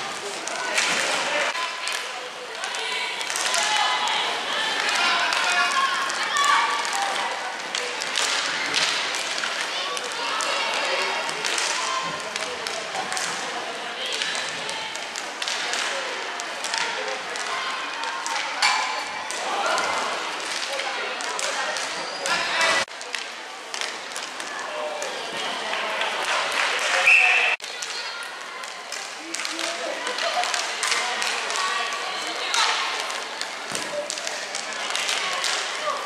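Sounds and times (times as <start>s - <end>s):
hockey sticks clacking on puck: 4.8s - 25.5s, 27.6s - 36.0s.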